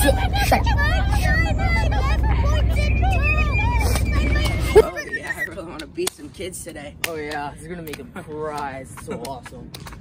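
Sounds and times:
indistinct voices talking: 0.0s - 9.4s
steady low rumble: 0.0s - 10.0s.

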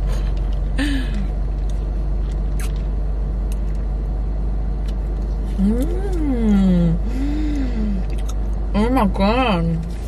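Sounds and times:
low steady rumble: 0.0s - 10.0s
woman humming: 5.6s - 8.1s.

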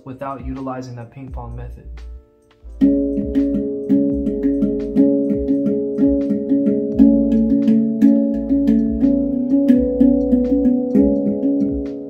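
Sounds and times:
handpan ringing notes: 2.7s - 12.0s.

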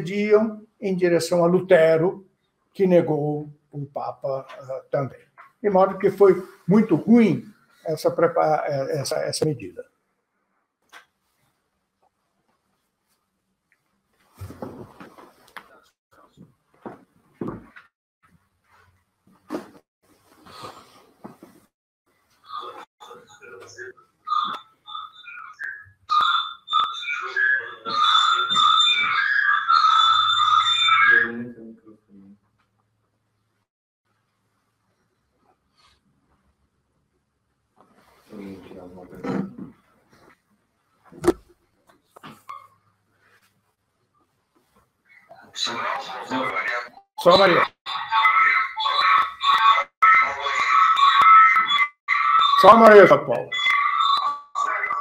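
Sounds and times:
person speaking: 2.8s - 9.8s, 45.3s - 51.5s, 52.4s - 53.6s
faint voices: 22.5s - 30.0s
high whistle-like tones: 22.5s - 31.6s.

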